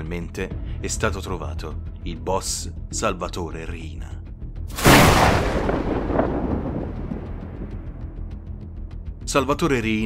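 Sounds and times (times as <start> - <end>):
cinematic boom hit: 4.8 - 8.0
low rumble: 4.8 - 8.8.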